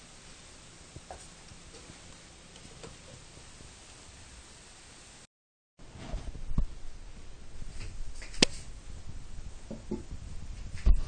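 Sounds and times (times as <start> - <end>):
frying hiss: 0.0 - 5.3.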